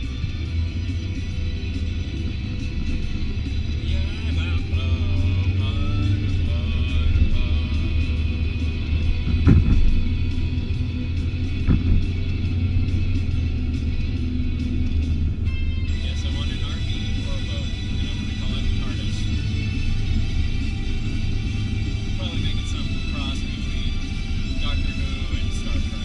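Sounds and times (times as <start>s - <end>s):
engine and road rumble: 0.0s - 26.0s
music playing in car: 0.0s - 26.0s
person singing along: 3.8s - 8.3s.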